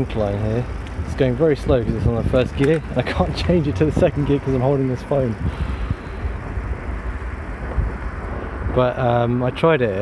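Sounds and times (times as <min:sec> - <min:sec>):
tyres rolling on asphalt: 0:00.0 - 0:10.0
wind buffeting microphone: 0:00.6 - 0:10.0.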